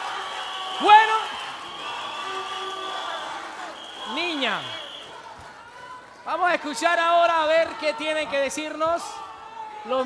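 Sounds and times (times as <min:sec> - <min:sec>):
studio audience crowd noise: 0:00.0 - 0:10.0.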